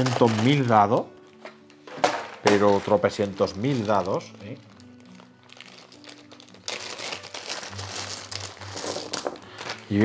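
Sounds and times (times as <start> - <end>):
plastic bag crinkling: 0.0 - 1.1, 2.0 - 10.0.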